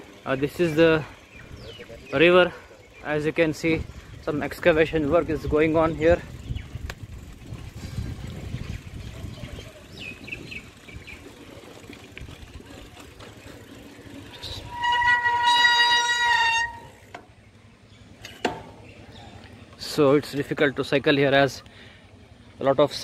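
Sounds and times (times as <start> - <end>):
wind rumble on microphone: 3.6 - 12.8
horn high note: 14.4 - 16.9.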